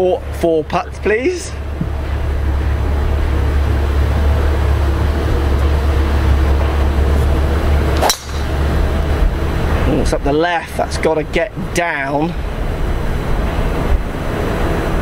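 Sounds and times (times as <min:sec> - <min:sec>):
golf club striking ball: 0:07.8 - 0:09.1
wind on microphone: 0:12.3 - 0:15.0.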